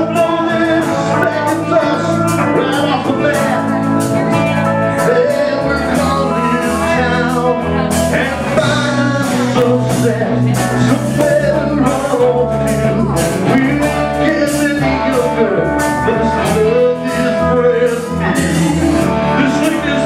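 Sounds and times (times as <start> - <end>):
bass guitar: 0.0 - 20.0
drum kit beat: 0.0 - 20.0
electric guitars: 0.0 - 20.0.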